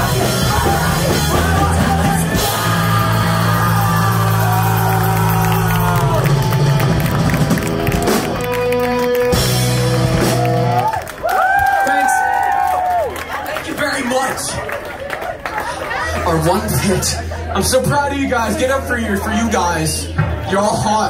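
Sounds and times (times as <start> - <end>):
live rock band with vocals: 0.0 - 8.5
crowd whooping and cheering: 0.0 - 19.4.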